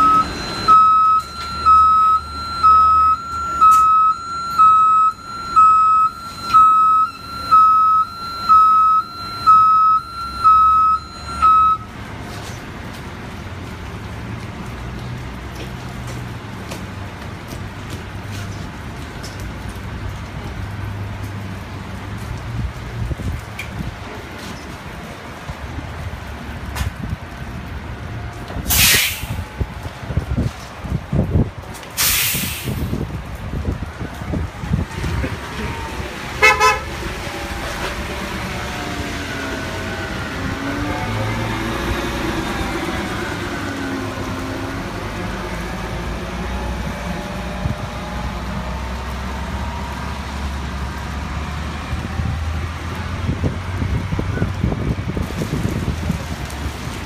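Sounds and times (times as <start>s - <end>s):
bus warning beeper: 0.0s - 11.9s, 35.8s - 36.9s
bus engine rumble: 0.0s - 57.0s
air hiss burst: 28.7s - 29.4s, 32.0s - 32.9s.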